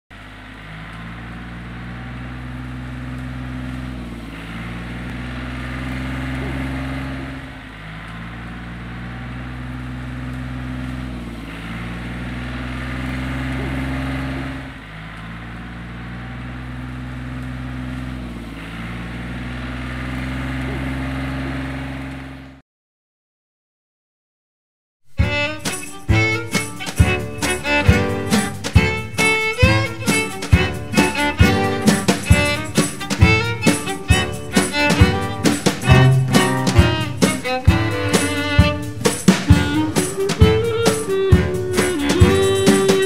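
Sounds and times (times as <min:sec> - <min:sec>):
tractor engine running: 0:00.1 - 0:22.6, 0:25.2 - 0:43.0.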